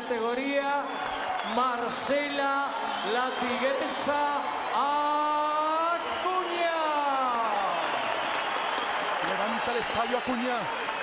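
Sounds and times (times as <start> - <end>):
crowd cheering and applause: 0.0 - 11.0.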